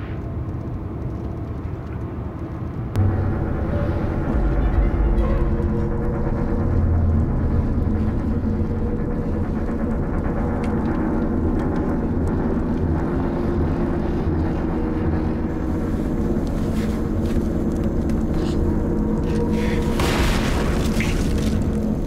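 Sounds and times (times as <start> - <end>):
low rumble with hum: 0.0 - 22.0.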